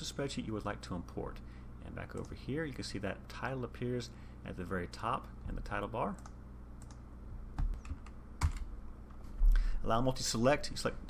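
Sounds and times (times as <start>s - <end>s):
computer keyboard typing: 7.6s - 8.7s.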